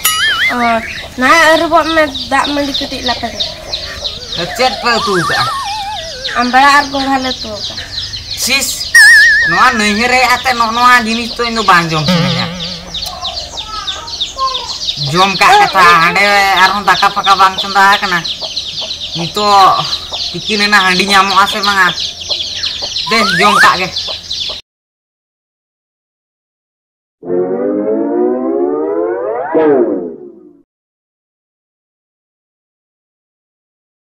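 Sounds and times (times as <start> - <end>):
small birds chirping: 0.0 - 24.6
loud siren-like wail: 4.2 - 6.7, 27.2 - 30.4.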